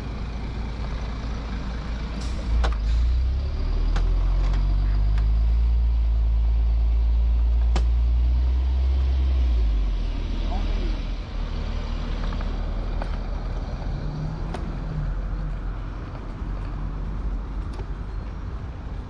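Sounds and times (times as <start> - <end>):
diesel bus engine drone: 0.0 - 19.0.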